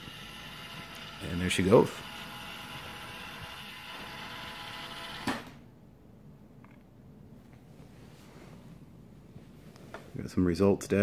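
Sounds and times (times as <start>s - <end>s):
robot vacuum drive motors: 0.0s - 5.5s.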